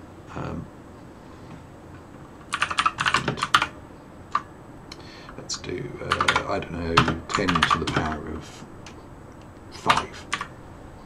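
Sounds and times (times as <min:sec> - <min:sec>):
computer keyboard typing: 0:02.4 - 0:04.5, 0:06.0 - 0:08.3, 0:09.8 - 0:10.5.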